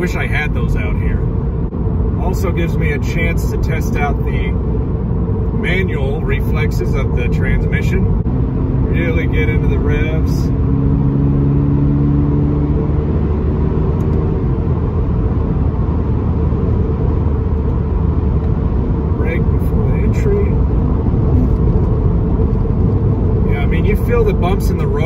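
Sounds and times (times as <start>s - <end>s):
car engine steady note: 0.0s - 25.0s
road and tyre noise: 0.0s - 25.0s.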